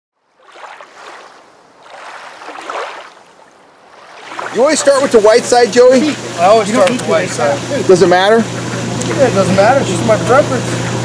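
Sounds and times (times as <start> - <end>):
lake water lapping: 0.2 - 11.0.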